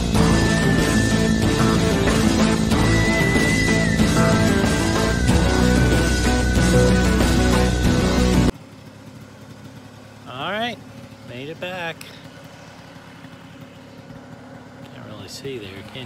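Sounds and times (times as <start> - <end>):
background music: 0.0 - 8.5
scooter engine idling: 0.0 - 16.0.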